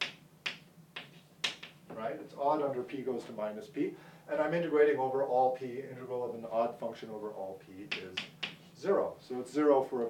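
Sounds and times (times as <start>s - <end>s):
chalk tapping on blackboard: 0.0s - 1.8s, 7.9s - 8.7s.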